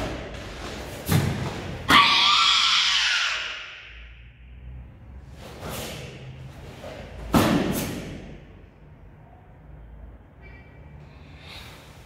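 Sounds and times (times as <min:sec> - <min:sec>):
kiai shout echoing: 0:01.8 - 0:04.2.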